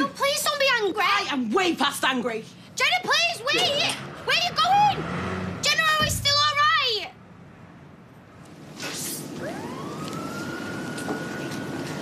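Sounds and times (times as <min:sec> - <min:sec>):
traffic noise: 0:00.0 - 0:12.0
siren: 0:09.3 - 0:12.0.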